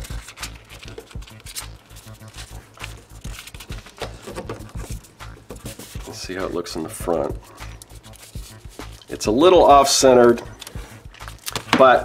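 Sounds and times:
paper wrapper crinkling: 0:00.0 - 0:06.2.

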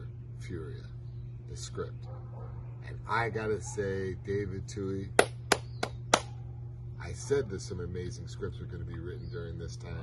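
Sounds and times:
man clapping hands: 0:05.1 - 0:06.3.

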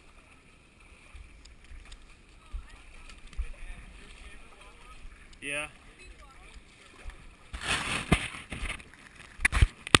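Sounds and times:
footsteps splashing through a creek: 0:00.0 - 0:10.0.

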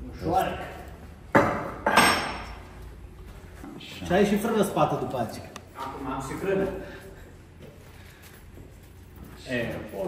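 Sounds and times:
low workshop background: 0:00.0 - 0:10.0.

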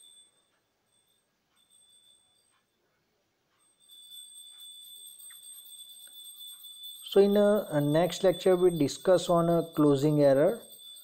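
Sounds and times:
recording hiss: 0:07.0 - 0:10.7.

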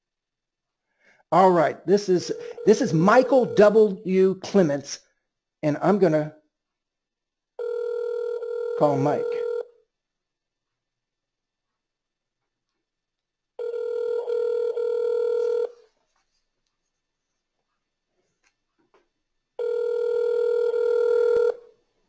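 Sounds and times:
telephone ringback tone: 0:02.3 - 0:03.7, 0:07.6 - 0:09.8, 0:13.6 - 0:15.8, 0:19.6 - 0:21.6.

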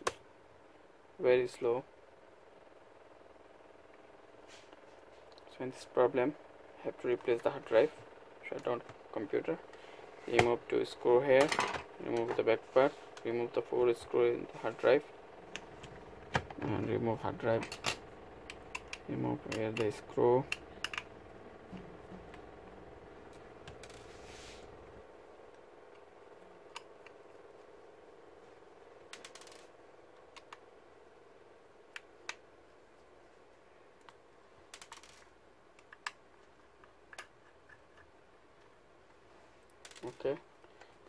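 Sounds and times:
low steady hum: 0:00.0 - 0:41.0.

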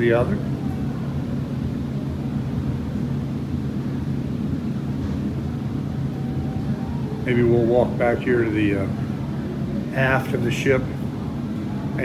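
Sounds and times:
ship machinery hum and rumble: 0:00.0 - 0:12.0.

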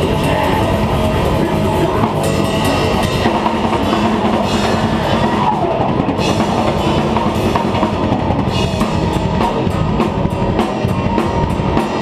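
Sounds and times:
drums and cymbals fast beat: 0:00.0 - 0:12.0
electric guitar: 0:00.0 - 0:12.0.

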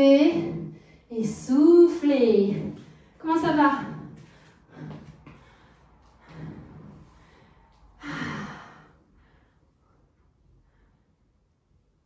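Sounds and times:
woman breathing heavily: 0:00.1 - 0:01.2, 0:02.3 - 0:11.6.

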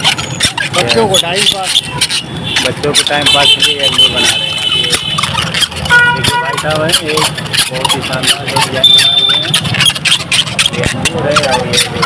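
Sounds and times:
street traffic: 0:00.0 - 0:12.0
car horn toot: 0:02.4 - 0:05.3, 0:05.9 - 0:06.6, 0:08.8 - 0:09.5.

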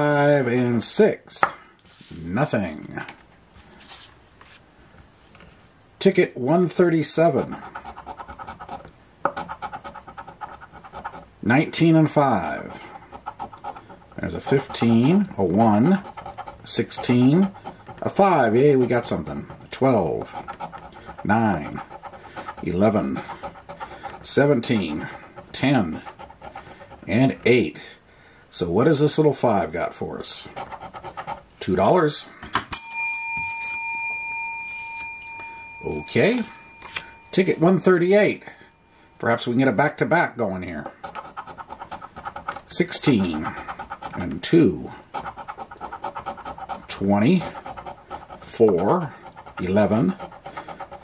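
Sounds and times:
coin scratching lottery ticket: 0:06.5 - 0:27.8, 0:30.2 - 0:31.8, 0:40.4 - 0:51.0
silver coin ringing: 0:32.7 - 0:38.0.

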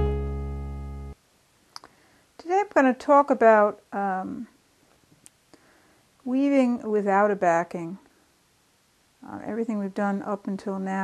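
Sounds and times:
piano chord: 0:00.0 - 0:01.2
short faint clicks: 0:01.7 - 0:02.0
woman speaking: 0:02.4 - 0:04.5, 0:06.3 - 0:08.1, 0:09.2 - 0:11.0.

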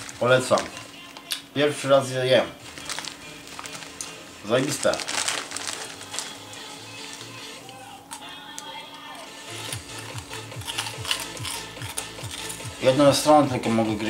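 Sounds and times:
foil snack bag crinkling: 0:00.0 - 0:01.2, 0:02.6 - 0:08.3, 0:09.5 - 0:12.6
quiet background music: 0:00.0 - 0:14.0
corn puffs crunched and chewed: 0:02.7 - 0:08.7, 0:09.5 - 0:12.7.

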